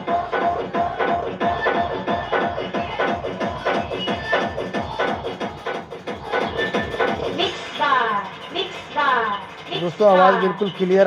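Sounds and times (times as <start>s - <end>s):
song with fast beat over loudspeakers: 0.0s - 11.0s.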